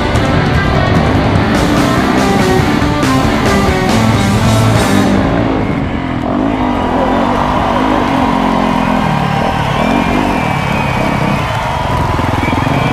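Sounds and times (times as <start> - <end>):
dirt bike engines revving: 0.0 - 12.9.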